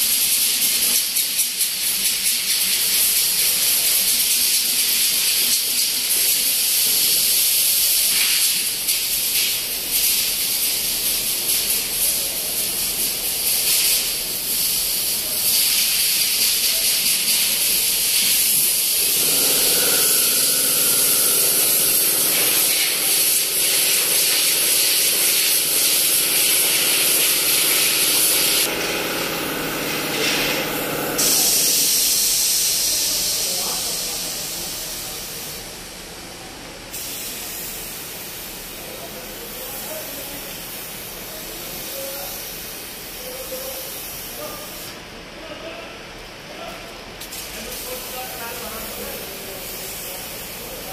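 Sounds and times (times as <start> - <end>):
paint spray gun hissing: 0.0 - 35.6, 36.9 - 45.0, 47.2 - 50.9.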